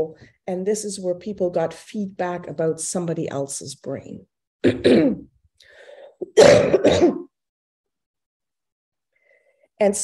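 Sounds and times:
woman clearing her throat: 0:04.6 - 0:05.3, 0:06.2 - 0:07.3.

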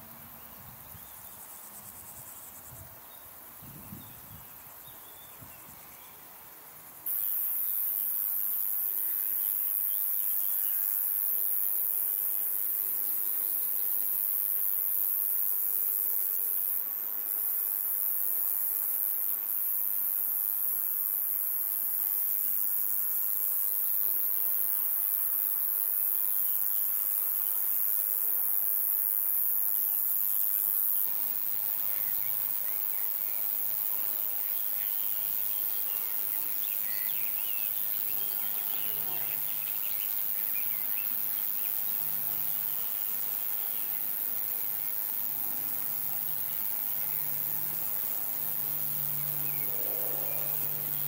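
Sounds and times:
buzzing of flying insects: 0:00.0 - 0:51.0
crickets shrilling: 0:06.8 - 0:51.0.

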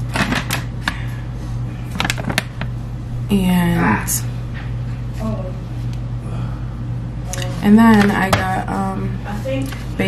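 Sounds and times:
steady low hum: 0:00.0 - 0:10.0
plastic packaging crinkling: 0:01.9 - 0:02.7.

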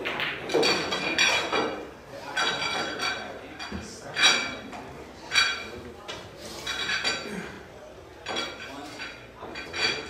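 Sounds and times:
pool balls clacking: 0:00.0 - 0:05.8.

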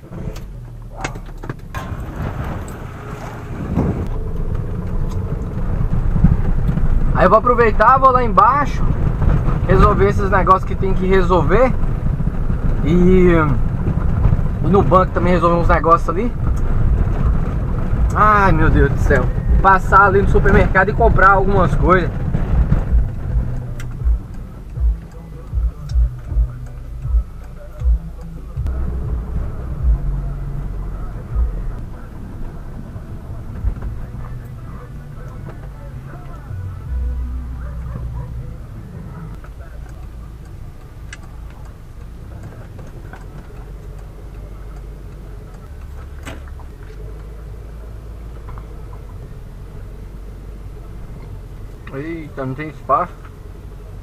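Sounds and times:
car driving over cobblestones: 0:00.0 - 0:54.0.

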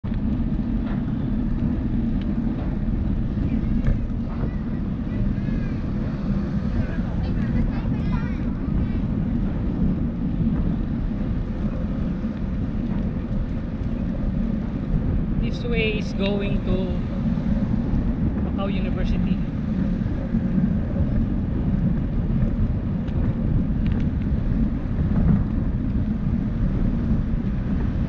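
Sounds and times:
bicycle tyres on asphalt: 0:00.0 - 0:28.0
wind rumble on microphone: 0:00.0 - 0:28.0.

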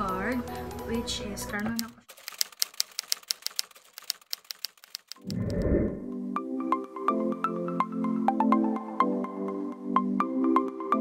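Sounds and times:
low rushing swell: 0:05.2 - 0:06.2.

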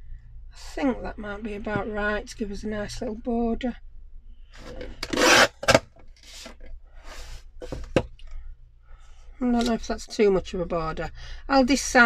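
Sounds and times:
paper trimmer blade slicing card: 0:05.0 - 0:05.8.

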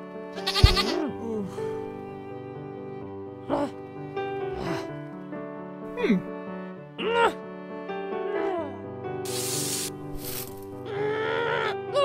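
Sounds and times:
background music chord: 0:00.0 - 0:12.0.

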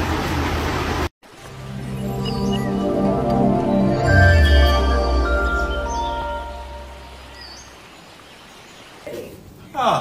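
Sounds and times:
logo jingle: 0:01.4 - 0:07.4.

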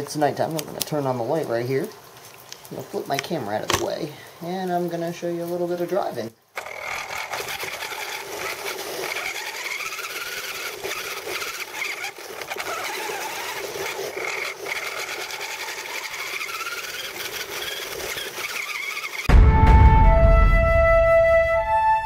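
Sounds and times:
electric motor and gears whining: 0:06.5 - 0:19.3
steady whirring: 0:06.6 - 0:19.3.

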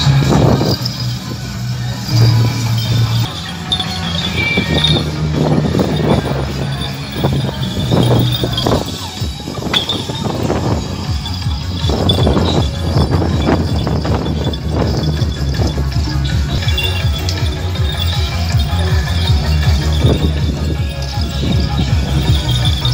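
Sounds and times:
drums and metal percussion: 0:00.0 - 0:22.9.

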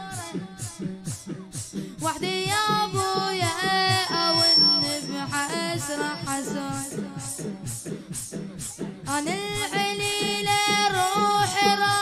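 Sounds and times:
boys chanting: 0:00.0 - 0:12.0
low regular beat: 0:00.0 - 0:12.0.

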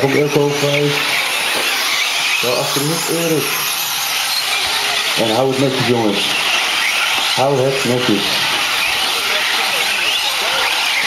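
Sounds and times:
electric motor whines: 0:00.0 - 0:11.0.

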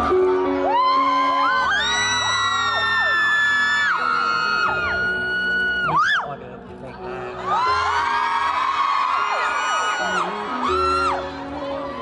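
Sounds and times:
fans screaming: 0:00.0 - 0:06.3, 0:07.4 - 0:12.0.

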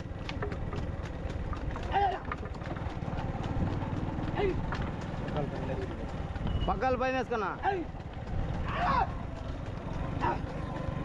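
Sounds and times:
bull hooves on road: 0:00.0 - 0:11.0
wooden cart knocking: 0:00.0 - 0:11.0
person shouting: 0:01.9 - 0:02.2, 0:08.6 - 0:09.2.

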